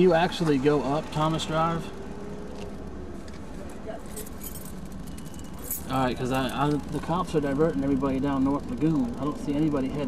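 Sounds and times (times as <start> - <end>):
road traffic: 0.0 - 10.0
vehicle engine rumble: 0.0 - 10.0
faint light clinking: 4.1 - 6.8.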